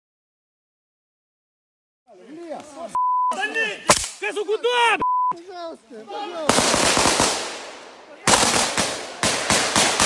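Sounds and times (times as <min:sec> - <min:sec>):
machine-gun fire bursts: 0:06.5 - 0:07.7, 0:08.3 - 0:10.0.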